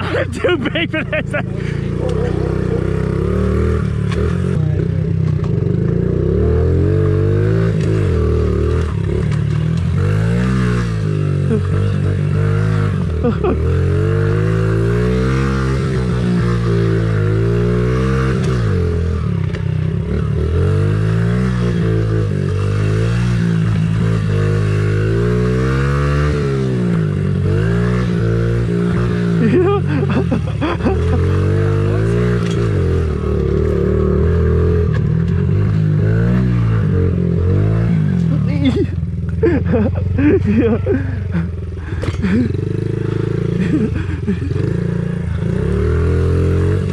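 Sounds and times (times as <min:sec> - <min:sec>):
small motorbike engine revving: 0:01.3 - 0:46.9.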